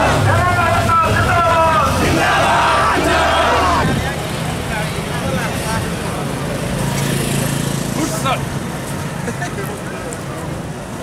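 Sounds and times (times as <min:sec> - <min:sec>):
crowd shouting a slogan: 0:00.0 - 0:04.1
scattered voices: 0:00.0 - 0:08.5
low hum of traffic: 0:00.0 - 0:11.0.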